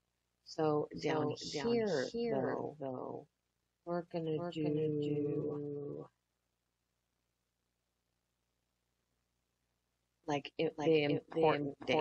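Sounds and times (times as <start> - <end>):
faint low hum: 0.5 - 6.2
person speaking: 0.6 - 3.2, 3.9 - 6.1, 10.3 - 12.0.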